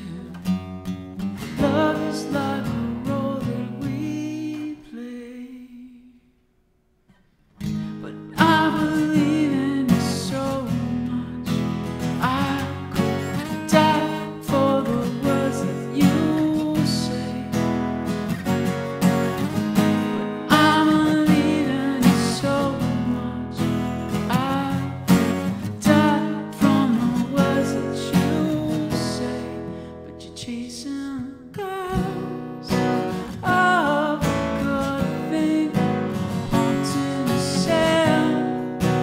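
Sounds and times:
acoustic guitar strumming: 0.0 - 5.4, 7.1 - 39.0.

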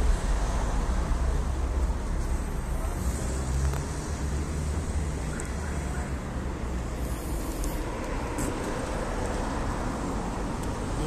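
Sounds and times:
cars passing on road: 0.0 - 11.0.

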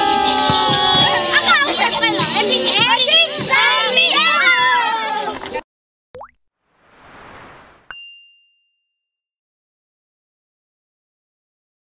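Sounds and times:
rising swoop: 6.7 - 7.9
whoosh: 6.7 - 7.9
high ringing ding: 7.9 - 9.2.

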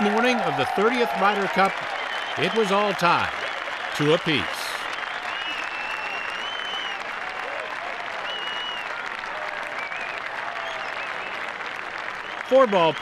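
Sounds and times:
crowd applause: 0.0 - 13.0
faint crowd voices: 4.0 - 4.9.

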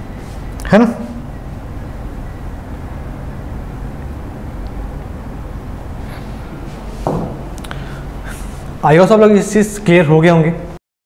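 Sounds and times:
low background hum with hiss: 0.0 - 10.8.

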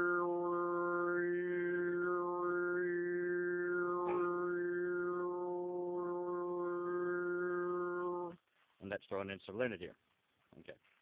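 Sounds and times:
man throat singing: 0.0 - 8.4.

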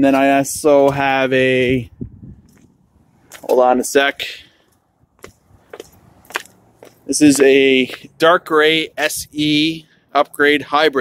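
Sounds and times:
footsteps on asphalt: 0.1 - 10.9.

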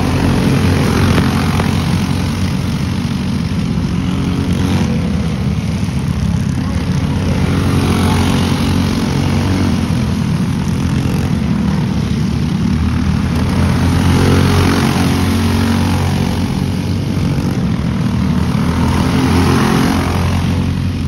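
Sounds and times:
go-kart engines buzzing: 0.0 - 21.0.

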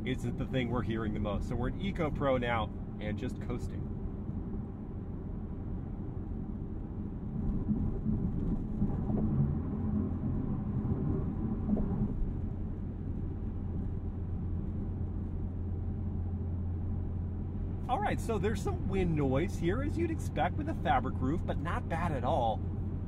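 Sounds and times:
wind noise from fabric roof: 5.9 - 16.5.

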